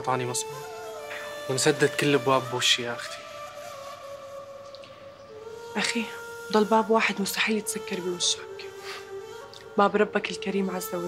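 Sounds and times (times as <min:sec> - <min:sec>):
soft sustained music tones: 0:00.0 - 0:11.0.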